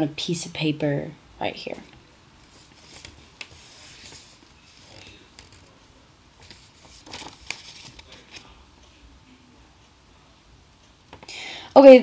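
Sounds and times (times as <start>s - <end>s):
paper being folded: 2.4s - 5.8s, 6.4s - 8.5s
fingers rubbing along paper fold: 6.4s - 8.4s.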